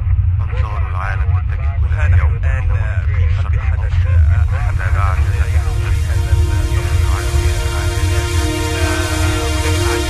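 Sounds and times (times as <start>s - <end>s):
deep bass rumble: 0.0s - 10.0s
voice with speech-like phrasing: 0.4s - 10.0s.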